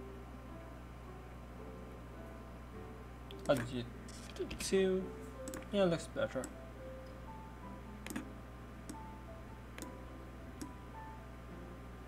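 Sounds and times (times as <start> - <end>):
faint jazz music: 0.0 - 12.0
computer mouse clicks: 5.4 - 5.7, 8.0 - 8.3.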